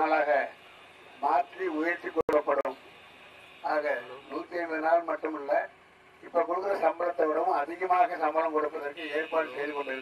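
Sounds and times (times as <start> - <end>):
man speaking into a microphone: 3.6 - 10.0.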